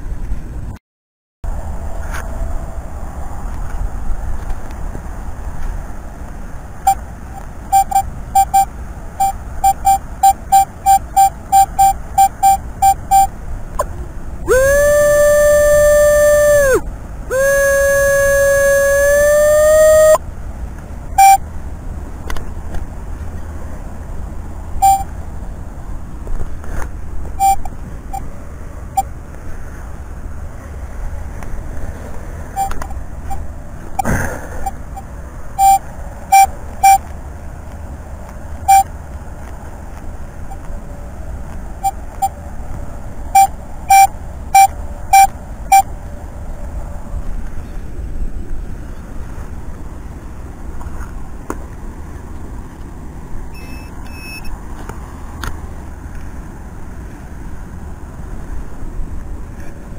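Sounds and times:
metal detector beeps: 6.8s - 13.3s, 14.5s - 20.2s, 21.2s - 21.4s, 24.8s - 25.1s, 27.4s - 28.2s, 32.6s - 33.4s, 34.0s - 37.0s, 38.7s - 38.9s, 41.8s - 42.4s, 43.3s - 45.9s, 53.5s - 54.5s.

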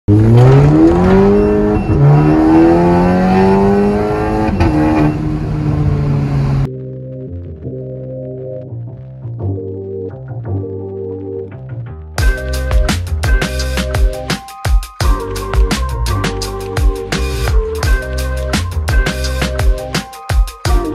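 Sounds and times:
car engine accelerating hard: 0.1s - 6.7s
music: 6.7s - 20.9s.

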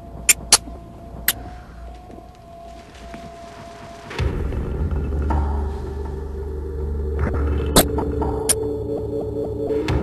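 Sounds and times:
low steady drone: 0.0s - 10.0s.

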